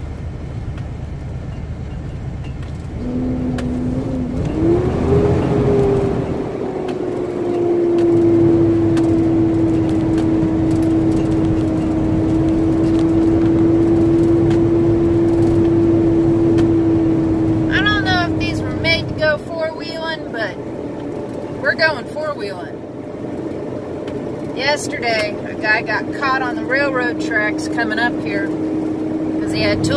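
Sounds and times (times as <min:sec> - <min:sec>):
truck diesel engine under load: 0:00.0 - 0:29.9.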